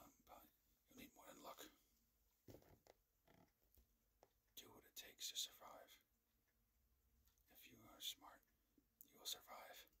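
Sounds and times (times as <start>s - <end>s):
man whispering: 0.0s - 1.9s, 4.5s - 6.2s, 7.4s - 10.0s.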